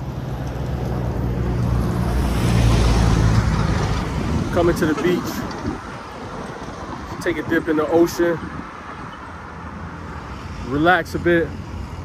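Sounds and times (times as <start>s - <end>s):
road and wind noise: 0.0s - 12.0s.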